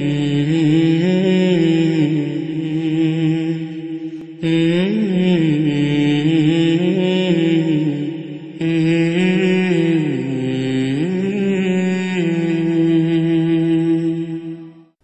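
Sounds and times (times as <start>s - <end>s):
person chanting devotional melody: 0.0s - 15.0s.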